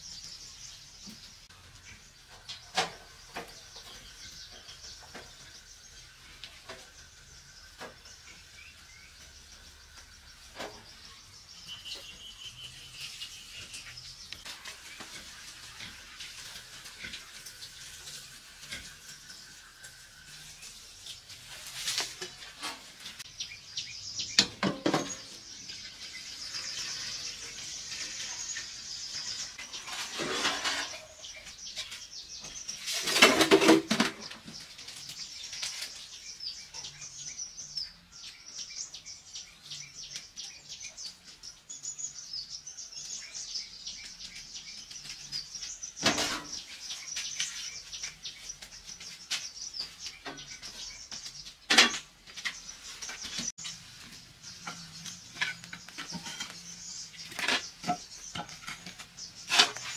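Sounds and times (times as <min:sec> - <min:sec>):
birds chirping: 0:00.0 - 0:59.9.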